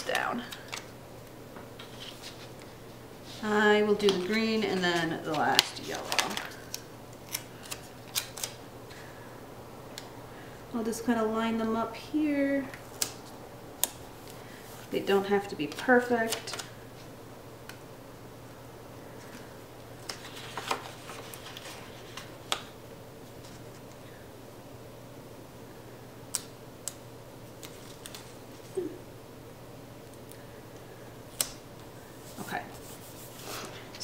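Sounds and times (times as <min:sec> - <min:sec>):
paper stickers crackling: 0:03.3 - 0:08.6, 0:19.2 - 0:22.7.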